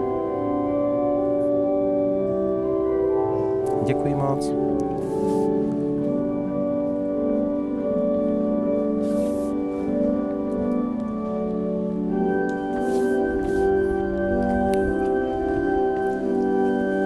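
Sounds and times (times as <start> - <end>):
church organ chords: 0.0 - 17.0.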